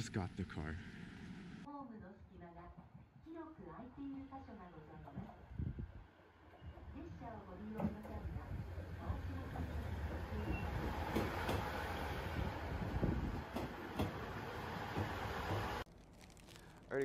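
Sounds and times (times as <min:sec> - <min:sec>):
diesel railcar rumbling past: 0:06.3 - 0:15.8.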